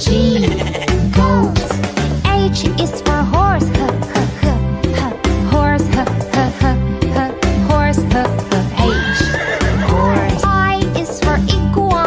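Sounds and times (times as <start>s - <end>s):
children's background music: 0.0s - 12.0s
horse whinny: 8.8s - 10.4s.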